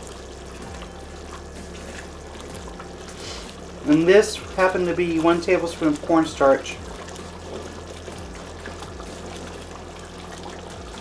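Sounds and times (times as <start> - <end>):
sauce bubbling in a wok: 0.0 - 11.0.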